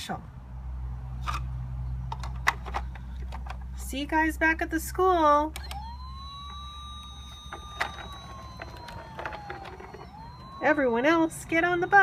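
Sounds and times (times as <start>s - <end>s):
toy siren wailing: 5.6s - 12.0s.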